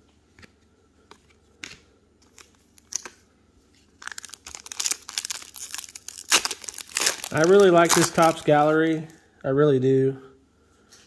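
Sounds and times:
foil wrapper crinkling and tearing: 0:03.9 - 0:09.1.

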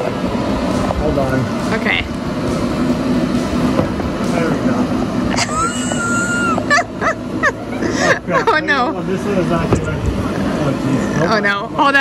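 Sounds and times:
blower droning: 0:00.0 - 0:12.0
voices: 0:00.0 - 0:12.0.

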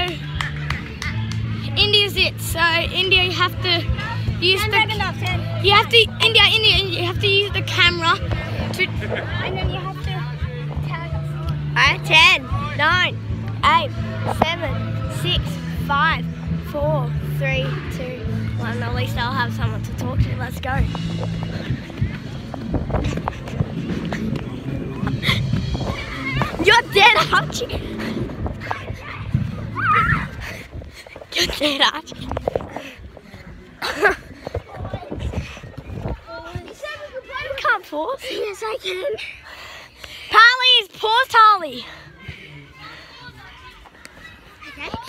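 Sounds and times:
children's voices: 0:01.7 - 0:21.8, 0:23.0 - 0:45.0.

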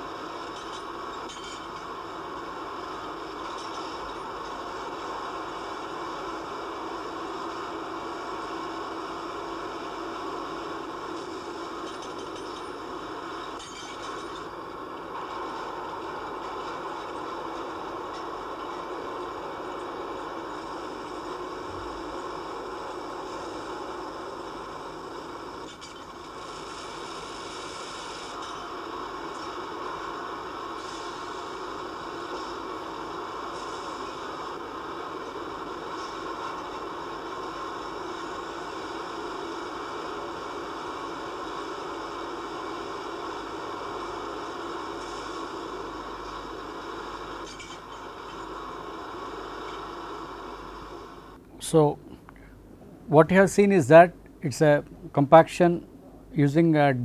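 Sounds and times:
crane engine and winch drone: 0:00.0 - 0:52.8.

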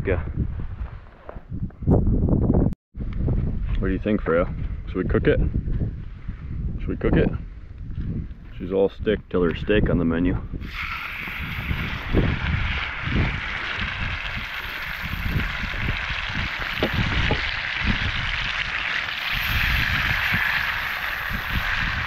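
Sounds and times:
steak sizzling in a skillet: 0:10.7 - 0:22.0
low rumbles: 0:11.6 - 0:22.0.

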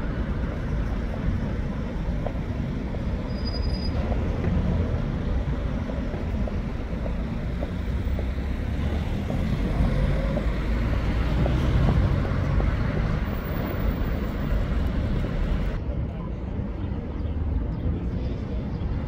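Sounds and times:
passing cars rumbling: 0:00.0 - 0:15.9.

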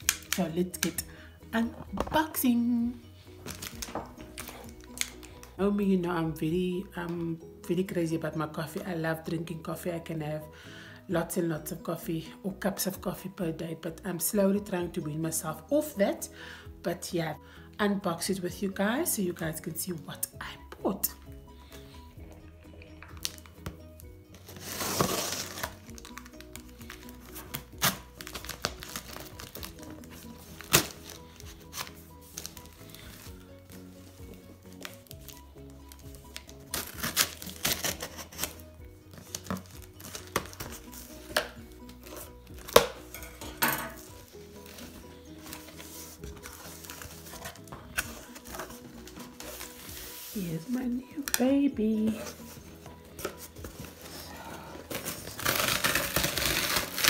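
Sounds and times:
background music: 0:00.0 - 0:57.0
cardboard crinkling and scraping: 0:24.4 - 0:26.2, 0:44.2 - 0:51.3, 0:52.0 - 0:57.0
cardboard tearing: 0:24.4 - 0:32.7, 0:36.4 - 0:42.9, 0:54.8 - 0:57.0.

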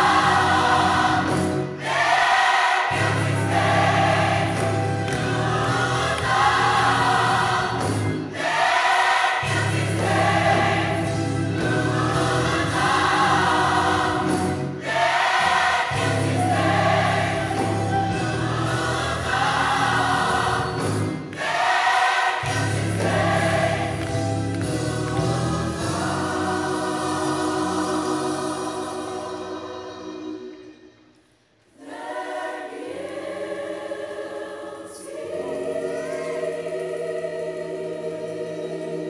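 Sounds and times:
gospel choir singing: 0:00.0 - 0:39.0
steady bass: 0:09.5 - 0:14.6.

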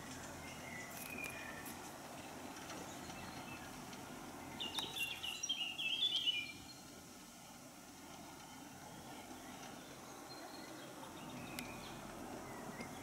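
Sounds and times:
faint outdoor background noise: 0:00.0 - 0:13.0
songbird chirping: 0:00.0 - 0:13.0.

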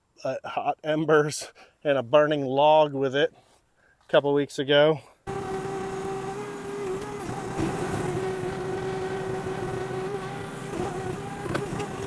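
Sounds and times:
skid steer engine running: 0:05.3 - 0:12.0.

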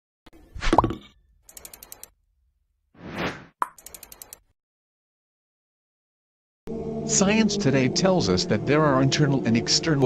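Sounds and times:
rapid crisp clicks: 0:01.4 - 0:02.1, 0:03.6 - 0:04.5.

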